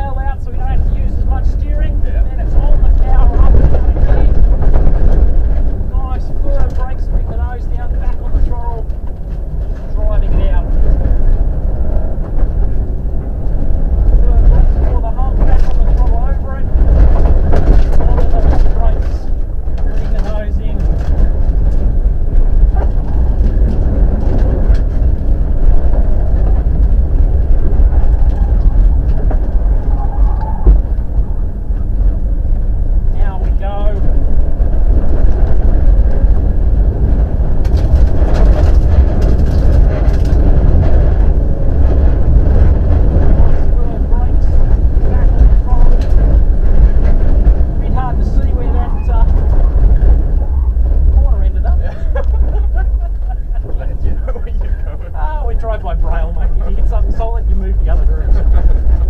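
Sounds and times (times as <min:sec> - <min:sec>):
tyres rumbling on gravel: 0:00.0 - 0:59.0.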